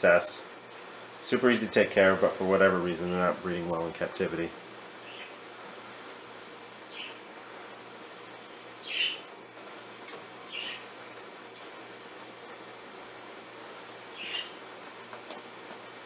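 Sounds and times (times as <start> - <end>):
low hum and hiss: 0.0 - 16.0.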